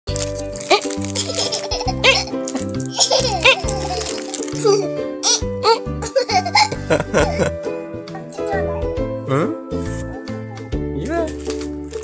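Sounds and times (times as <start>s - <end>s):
small child giggling: 0.7s - 8.1s
background music with bass line: 4.9s - 12.0s.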